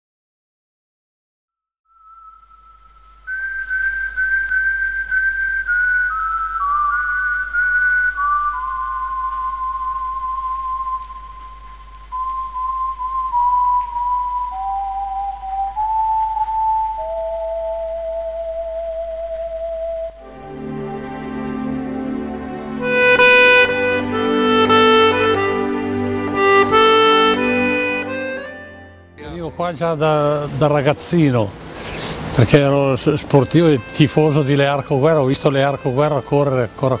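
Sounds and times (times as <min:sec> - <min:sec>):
slow whistled melody: 0:01.8 - 0:29.2
steady low hum: 0:02.5 - 0:21.6.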